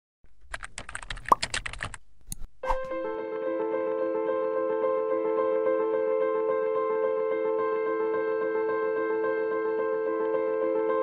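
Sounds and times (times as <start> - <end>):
computer keyboard typing: 0.5 - 2.5.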